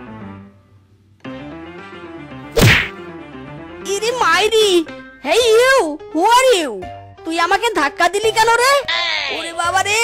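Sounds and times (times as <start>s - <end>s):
light background music: 0.0s - 10.0s
cartoon whack sound effect: 2.6s - 3.0s.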